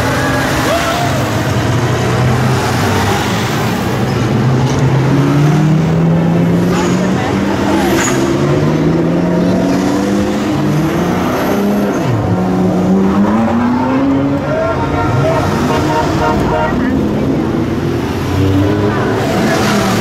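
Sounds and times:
sports car engines revving: 0.0s - 20.0s.

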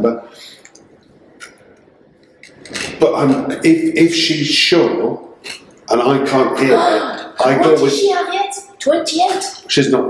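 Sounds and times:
man speaking: 0.0s - 0.6s, 2.8s - 8.1s, 9.5s - 10.0s
low room noise: 0.0s - 10.0s.

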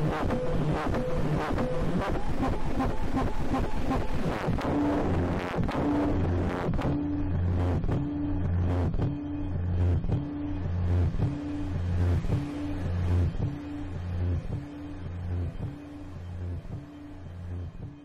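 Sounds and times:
low droning pulse: 0.0s - 18.0s
scattered clicks and noise: 0.0s - 18.0s.

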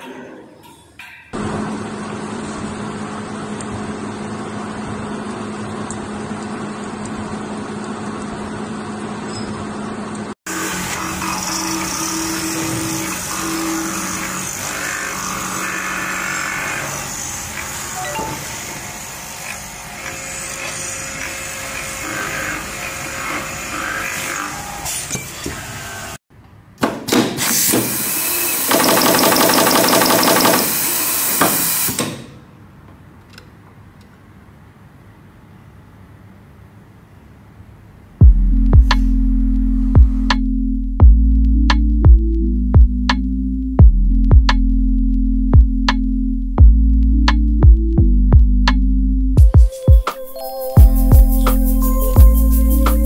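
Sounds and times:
lathe machining noise: 10.5s - 24.9s
loud machine noise pulsing: 28.0s - 31.5s.

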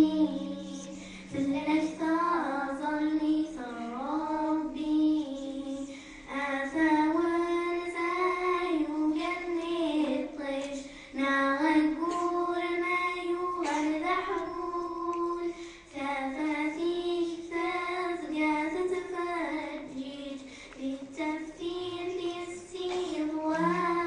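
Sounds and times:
girls singing together: 0.0s - 24.0s.

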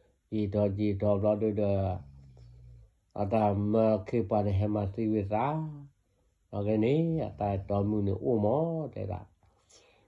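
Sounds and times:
man chanting: 0.3s - 2.2s, 3.1s - 9.3s.

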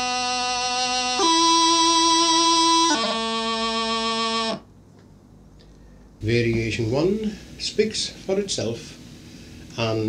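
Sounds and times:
bagpipe practice chanter: 0.0s - 4.7s.

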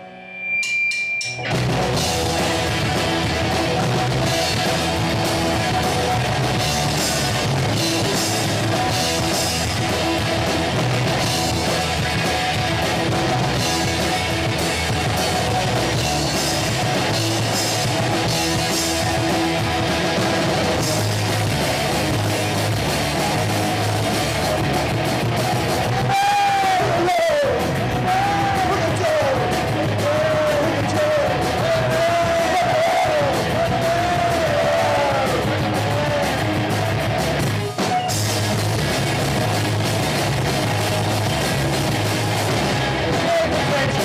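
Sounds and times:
sliding guitar pitches: 0.0s - 27.1s
punk rock band playing loudly: 0.0s - 44.0s.

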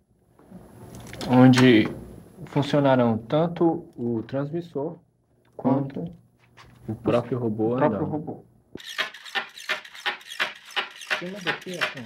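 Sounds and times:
servo motors mechanical clatter: 8.8s - 12.0s.

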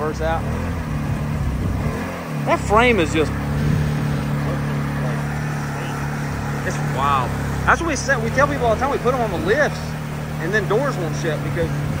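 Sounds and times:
utv engine running: 0.0s - 12.0s.

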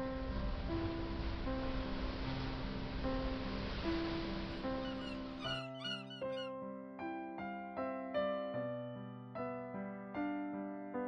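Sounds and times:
soft instrumental music: 0.0s - 11.0s
gull calls: 4.7s - 6.6s.

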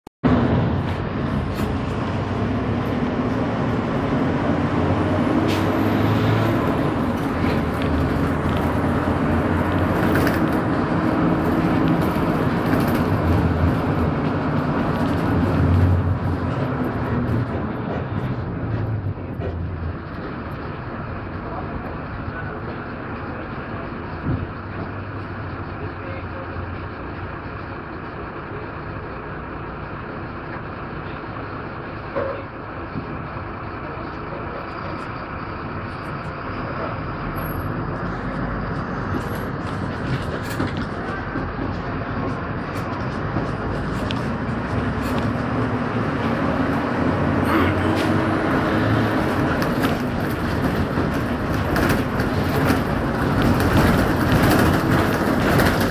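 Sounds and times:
bus engine and road rumble: 0.2s - 55.9s.

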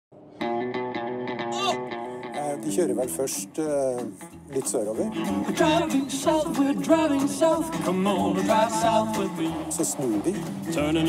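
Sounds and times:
electric guitar repeated notes: 0.4s - 3.2s.

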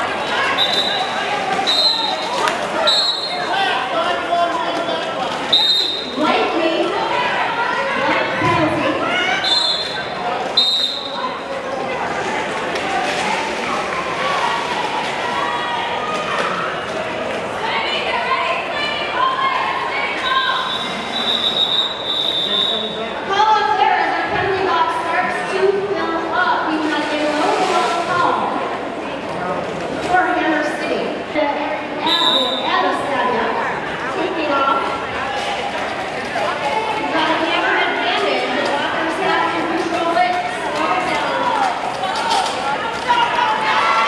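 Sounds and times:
murmur of crowd voices: 0.0s - 44.0s
referee whistle blasts: 1.6s - 3.5s, 5.5s - 6.1s, 9.4s - 10.0s, 10.6s - 11.2s, 20.2s - 23.0s, 32.0s - 32.7s
roller skates rolling on floor: 35.2s - 44.0s.

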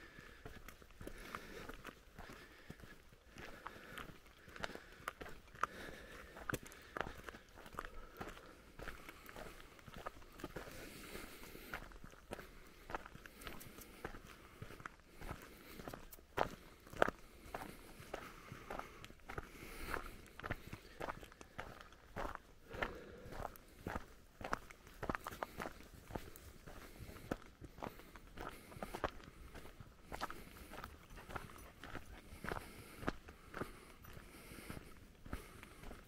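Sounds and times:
footsteps crunching on stony track: 0.0s - 36.0s.

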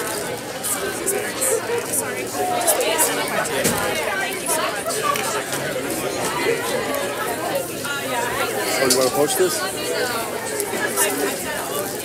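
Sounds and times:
background chatter of voices: 0.0s - 12.0s.

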